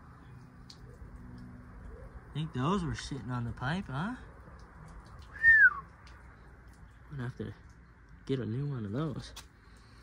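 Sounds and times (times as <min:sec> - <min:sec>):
whistled bird call: 0:05.3 - 0:05.9.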